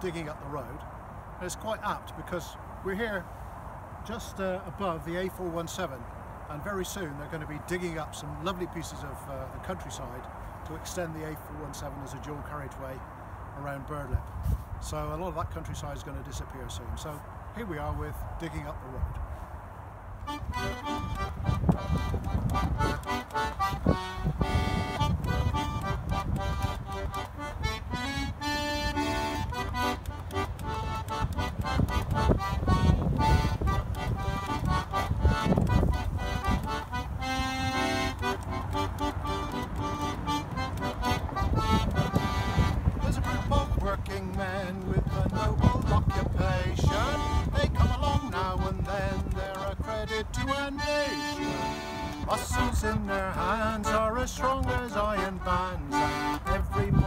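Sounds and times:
button accordion playing folk tune: 0:20.2 - 0:57.0
man singing: 0:43.0 - 0:57.0.

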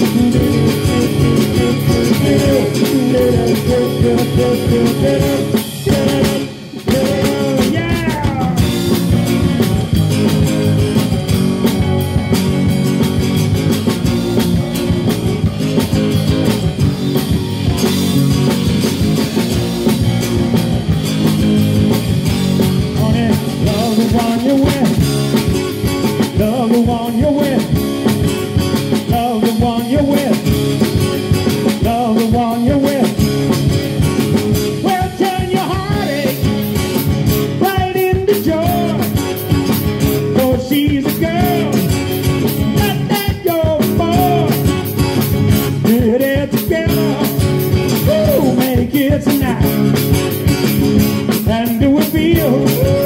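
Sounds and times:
drum kit: 0:00.0 - 0:53.0
electric bass: 0:00.0 - 0:53.0
guitars: 0:00.0 - 0:53.0.

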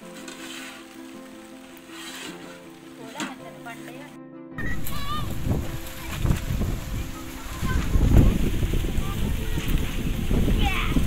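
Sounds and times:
background music: 0:00.0 - 0:11.0
bird chirps: 0:04.6 - 0:05.2
wind buffeting the microphone: 0:04.6 - 0:11.0.

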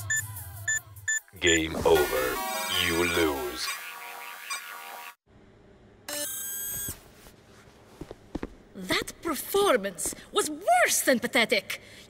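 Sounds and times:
electronic sci-fi buzz: 0:01.9 - 0:05.2.

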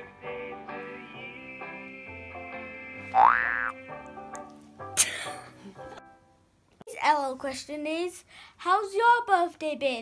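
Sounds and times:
rising boing tone: 0:03.1 - 0:03.8.

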